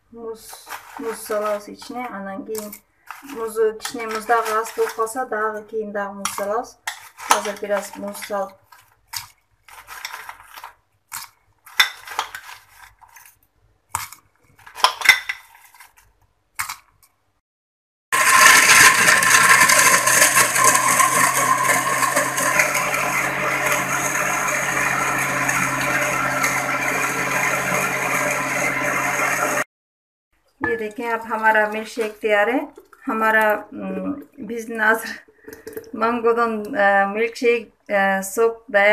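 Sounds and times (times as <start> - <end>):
blender motor running: 18.2 - 29.7.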